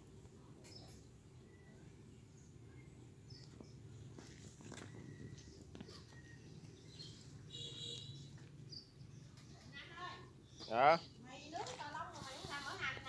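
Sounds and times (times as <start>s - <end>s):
small birds chirping: 0.0s - 13.0s.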